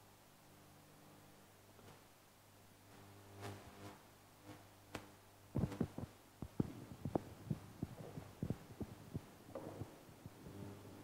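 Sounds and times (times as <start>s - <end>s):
steady low hum: 0.0s - 11.0s
dull thumps and knocks: 5.6s - 10.4s.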